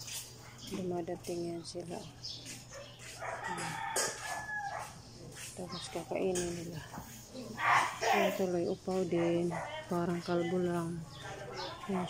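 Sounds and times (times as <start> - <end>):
rooster crowing: 3.2 - 5.0.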